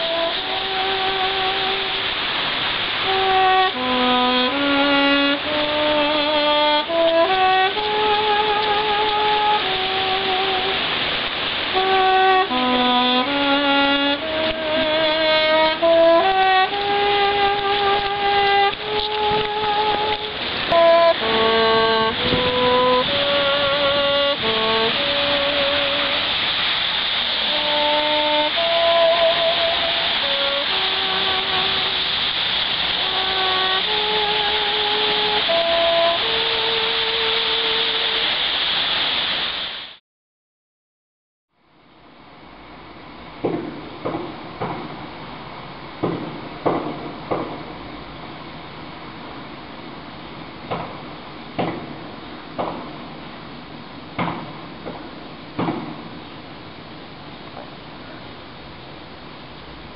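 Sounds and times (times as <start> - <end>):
saxophone slow melody: 0.0 - 38.4
background hiss: 0.0 - 40.0, 41.6 - 59.9.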